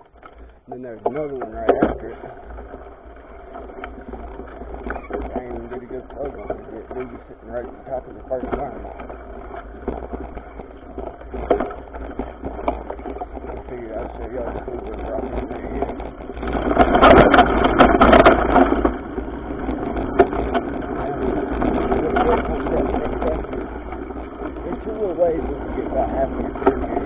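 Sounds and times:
bike and mount rattling: 0.0 - 27.0
bike tyres on dirt: 0.0 - 27.0
sharp knocks over bumps: 0.0 - 27.0
wind on microphone: 1.2 - 27.0.

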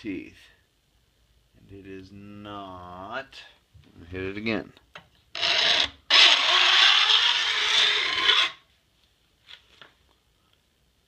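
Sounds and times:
file scraping saw teeth: 5.4 - 8.6.

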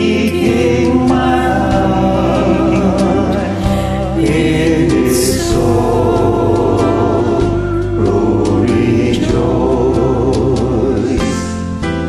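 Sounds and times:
voices singing in harmony: 0.0 - 11.7
musical backing track: 0.0 - 12.0.

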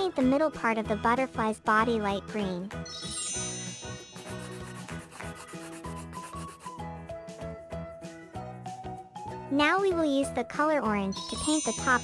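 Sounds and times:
light background music with beat: 2.5 - 12.0
scratchy brush rubbing: 3.9 - 6.8.

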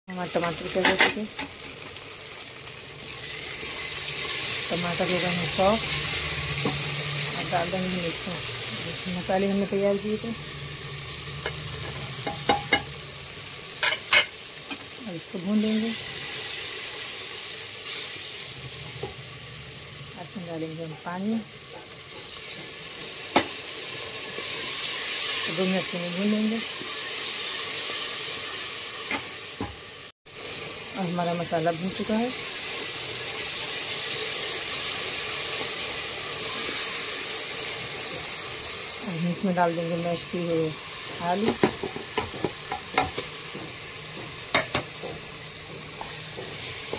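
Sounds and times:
spices sizzling in hot oil: 0.1 - 46.9.

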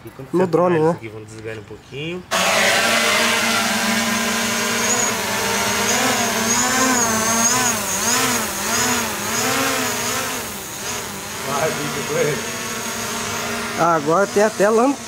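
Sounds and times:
drone propellers buzzing: 2.3 - 15.0.

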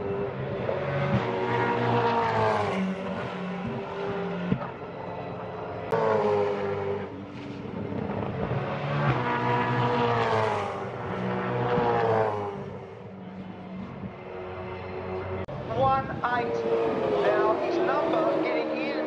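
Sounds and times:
race cars passing: 0.0 - 19.0.

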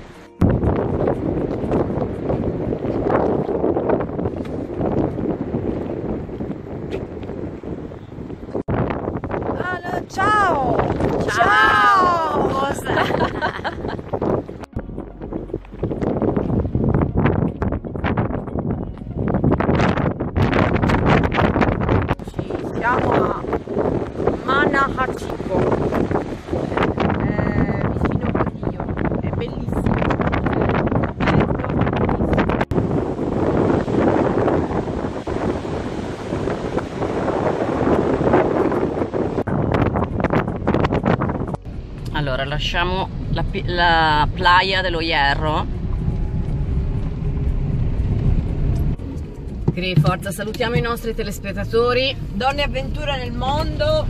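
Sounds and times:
strong wind buffeting microphone: 0.0 - 54.0.

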